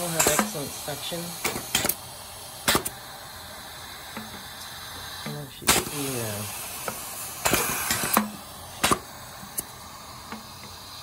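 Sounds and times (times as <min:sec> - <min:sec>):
pneumatic pistons clicking: 0:00.0 - 0:11.0
steady air hiss: 0:00.0 - 0:11.0.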